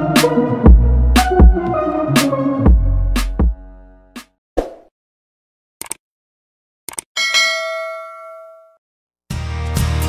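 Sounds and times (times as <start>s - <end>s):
notification bell ding: 7.2s - 8.8s.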